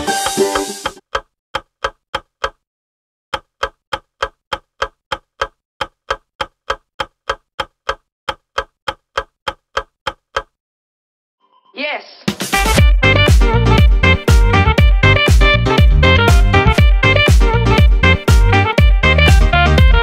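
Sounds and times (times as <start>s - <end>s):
clock ticking: 0.0s - 2.6s, 3.3s - 10.6s.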